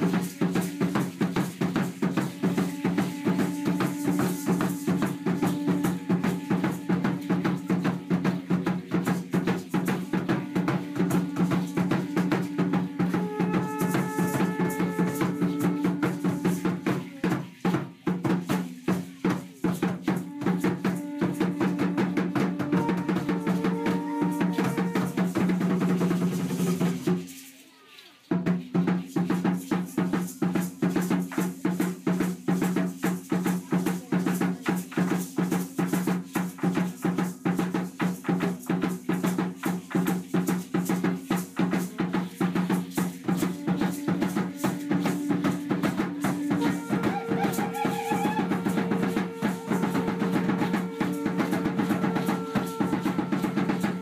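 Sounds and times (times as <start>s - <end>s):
drum beating fast rhythm: 0.0s - 27.5s, 28.3s - 54.0s.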